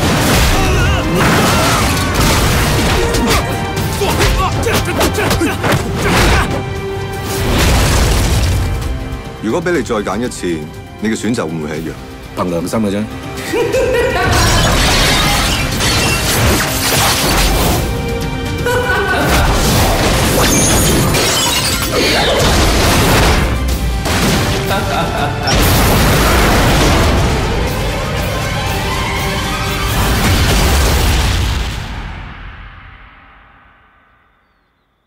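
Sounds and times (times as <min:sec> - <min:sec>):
dramatic music: 0:00.0 - 0:34.4
loud shattering crash: 0:25.4 - 0:27.4.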